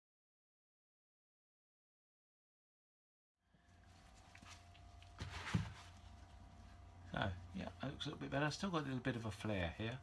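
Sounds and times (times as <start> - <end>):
low hum: 3.4 - 10.0.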